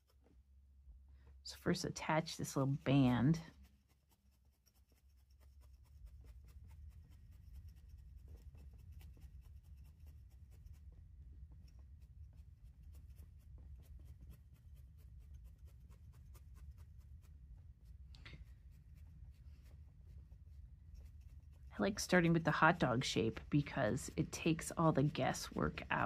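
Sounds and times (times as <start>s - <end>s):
felting needle poking wool: 0.0s - 26.0s
low room hum: 0.0s - 26.0s.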